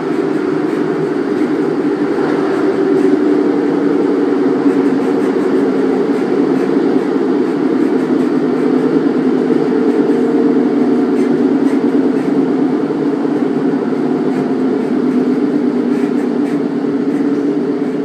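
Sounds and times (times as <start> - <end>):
train diesel engine drone: 0.0 - 18.0
wheels ticking on track: 0.0 - 18.0.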